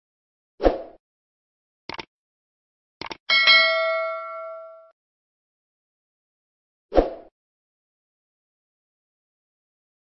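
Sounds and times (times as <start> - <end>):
notification bell ding: 3.3 - 4.9.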